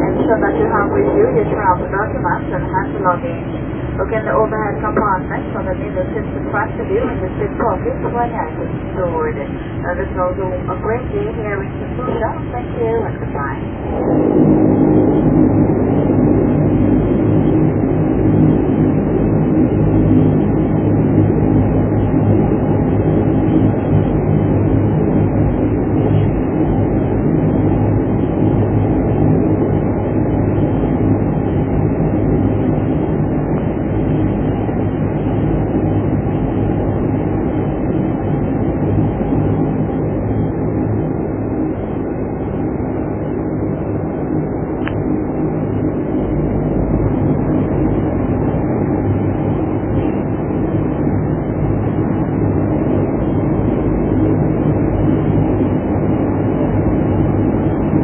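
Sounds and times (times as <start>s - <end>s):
turboprop engines droning in cabin: 0.0s - 58.0s.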